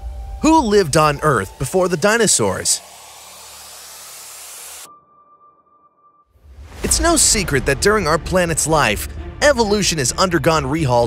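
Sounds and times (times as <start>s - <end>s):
low hum: 0.0s - 4.9s
underwater rushing hiss: 0.0s - 4.9s.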